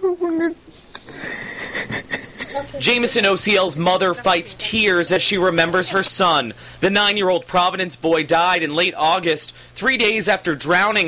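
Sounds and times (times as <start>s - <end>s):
wheezing breath: 0.7s - 1.9s, 6.6s - 6.8s
woman sobbing: 1.0s - 3.1s.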